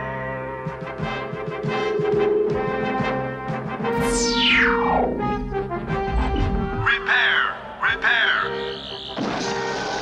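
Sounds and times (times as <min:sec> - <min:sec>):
cartoon soundtrack music: 0:00.0 - 0:10.0
warbling electronic sound effects: 0:04.0 - 0:07.0.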